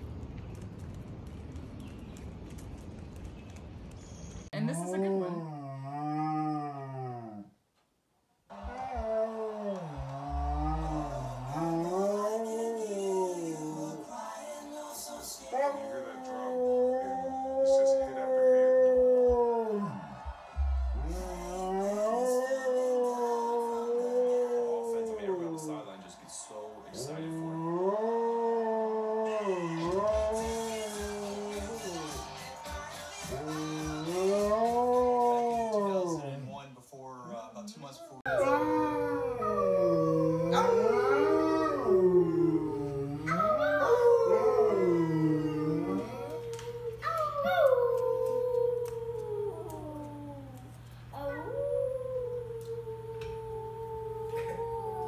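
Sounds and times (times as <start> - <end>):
dog howling: 8.5 - 14.0, 15.4 - 26.0, 26.9 - 32.1, 33.3 - 36.4, 38.3 - 55.0.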